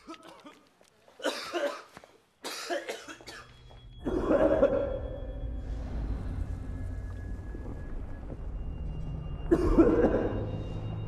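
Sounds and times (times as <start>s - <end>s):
man coughing: 1.2s - 5.0s, 9.5s - 10.5s.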